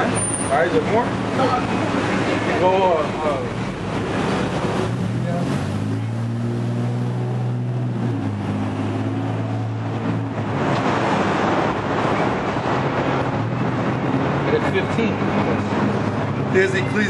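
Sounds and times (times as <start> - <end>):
rushing traffic: 0.0 - 17.0
vehicle engine humming: 0.0 - 17.0
wind: 0.0 - 17.0.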